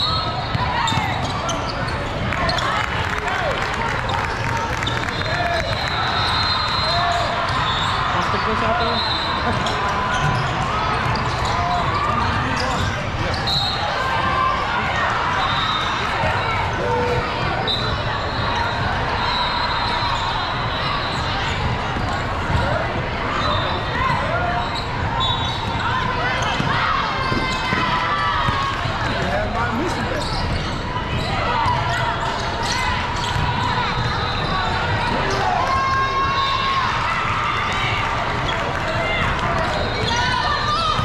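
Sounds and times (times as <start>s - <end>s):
many voices talking: 0.0s - 41.0s.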